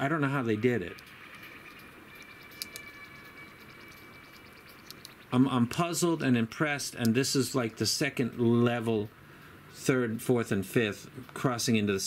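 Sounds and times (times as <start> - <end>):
faint steady high tone: 0.0 - 6.5
small clicks of metal earphones: 4.8 - 5.2.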